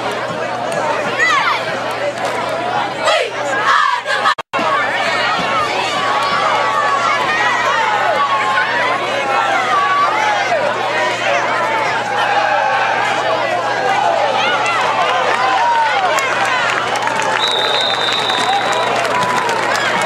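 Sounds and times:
crowd shouting and cheering: 0.0s - 20.0s.

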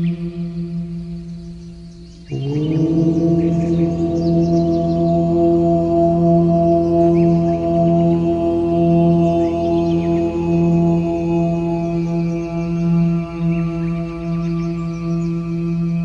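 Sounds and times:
chanted om drone: 0.0s - 16.0s.

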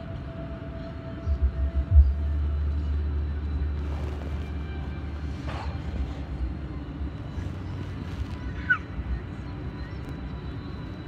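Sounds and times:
car cabin rumble: 1.2s - 11.0s.

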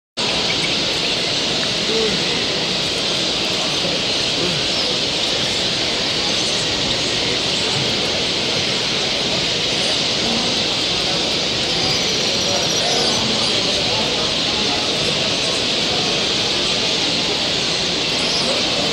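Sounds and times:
many small birds chirping: 0.2s - 18.9s
people talking: 0.2s - 18.9s.

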